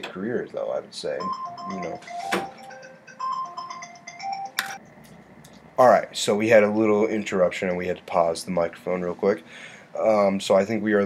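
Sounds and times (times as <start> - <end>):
electronic melody: 1.2 - 4.8.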